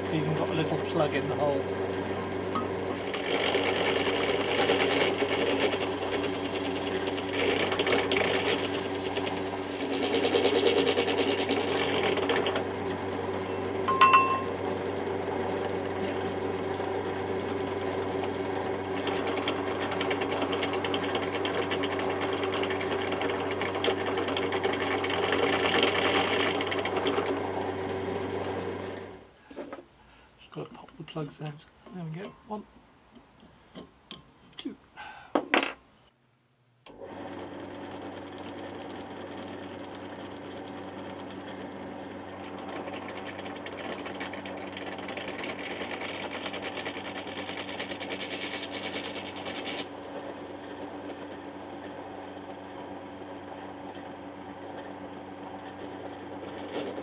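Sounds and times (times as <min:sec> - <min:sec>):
drill press drilling wood: 0:01.7 - 0:13.5, 0:36.9 - 0:57.0.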